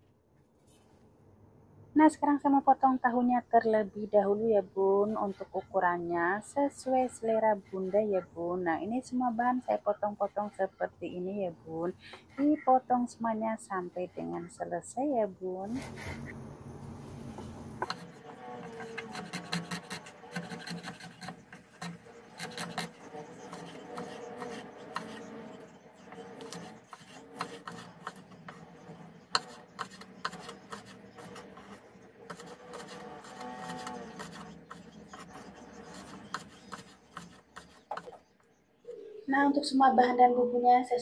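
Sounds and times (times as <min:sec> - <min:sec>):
knife chopping on wooden board: 0:17.8 - 0:25.3.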